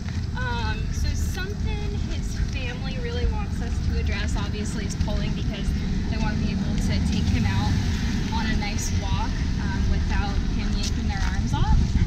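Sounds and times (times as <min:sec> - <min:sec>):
low outdoor rumble: 0:00.0 - 0:12.0
people talking indistinctly: 0:00.4 - 0:12.0.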